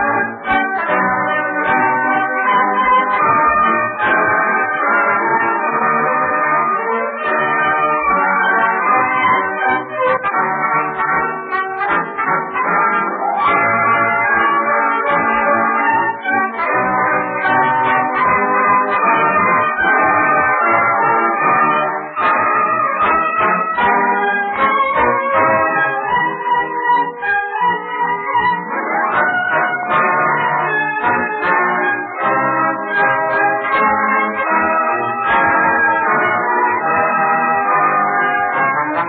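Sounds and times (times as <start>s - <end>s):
muffled orchestra playing medley: 0.0s - 39.0s.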